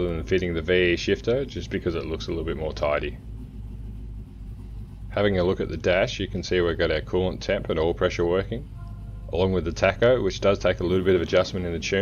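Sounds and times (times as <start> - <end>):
engine idling low rumble: 0.0 - 12.0.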